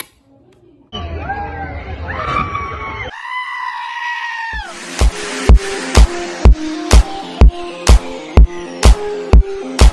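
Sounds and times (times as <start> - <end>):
electronic music with heavy kick: 4.6 - 9.9.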